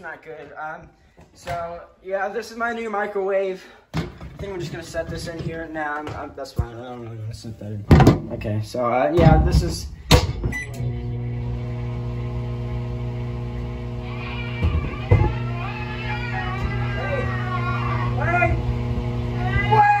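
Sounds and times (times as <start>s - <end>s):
microwave oven humming: 10.3s - 20.0s
muffled person yelling and wailing: 14.0s - 18.6s, 19.3s - 20.0s.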